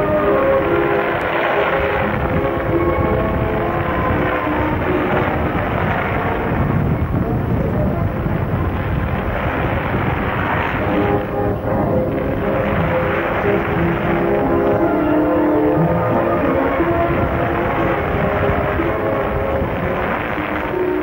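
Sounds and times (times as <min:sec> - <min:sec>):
wind buffeting microphone: 0:00.0 - 0:21.0
music from loudspeaker: 0:10.7 - 0:21.0.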